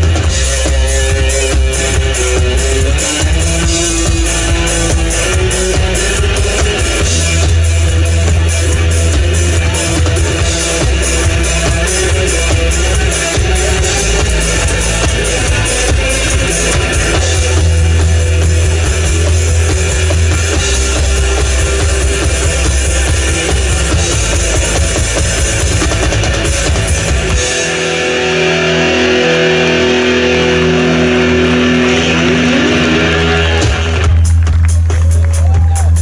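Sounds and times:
live pop-rock band: 0.0 - 36.0.

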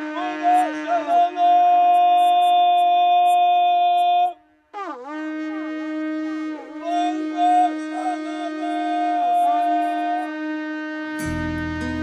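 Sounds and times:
shofar blast: 0.0 - 12.0.

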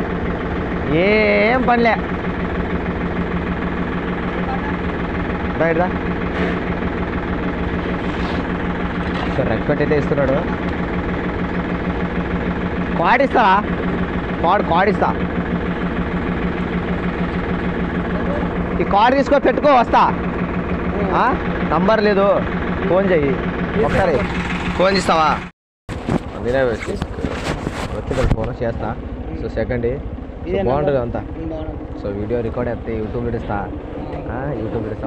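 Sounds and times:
engine idling: 0.0 - 35.0.

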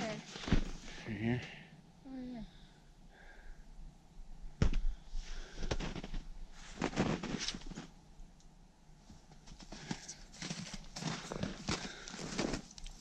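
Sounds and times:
snowshoe footsteps in snow: 5.4 - 7.9, 9.5 - 12.8.

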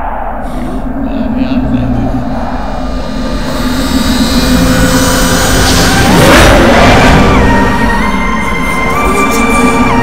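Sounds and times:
low rumbling drone: 0.0 - 10.0.

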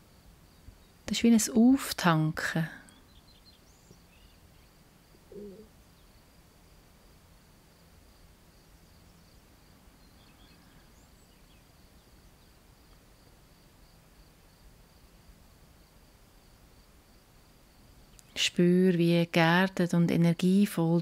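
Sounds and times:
faint bird chirps: 2.8 - 6.3, 8.6 - 12.9
high chirring cricket: 3.0 - 18.4.

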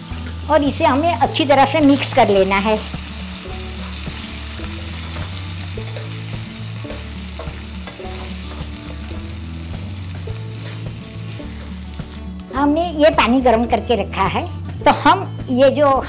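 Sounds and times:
millet sizzling in hot oil: 0.0 - 12.3
background music bass line: 0.0 - 16.0.

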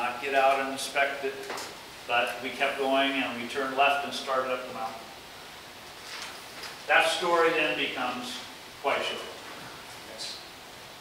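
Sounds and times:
man talking: 0.0 - 1.5, 2.1 - 5.1, 6.9 - 9.4, 10.0 - 10.5
room hiss: 0.0 - 11.0
faint rustle: 5.9 - 7.5.

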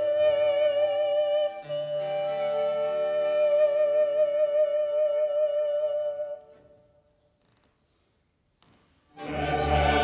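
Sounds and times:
choir and orchestra note: 9.2 - 10.0.

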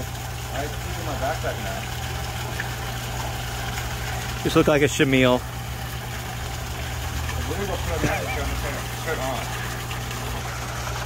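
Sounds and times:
electric air pump humming: 0.0 - 11.0.

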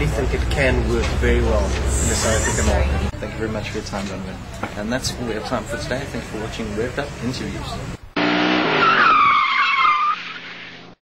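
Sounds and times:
car tyres squealing: 8.2 - 11.0.

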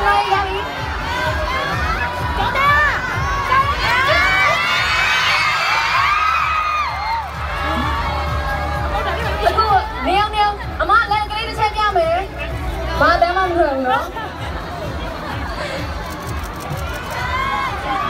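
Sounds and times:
crowd screaming and cheering: 0.0 - 18.0.

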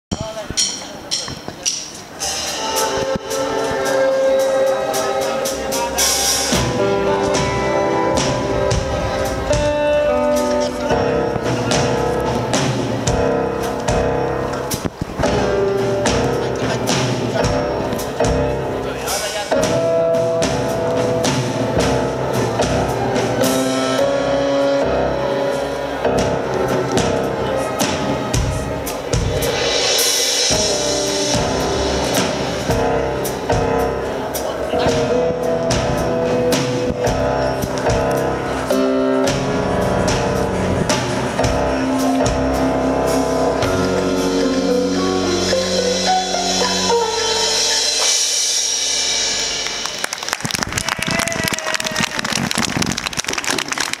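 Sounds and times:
drums: 0.0 - 54.0
music: 0.1 - 54.0
electric guitars and keyboard chords: 2.1 - 50.6
audience applauding: 49.6 - 54.0.

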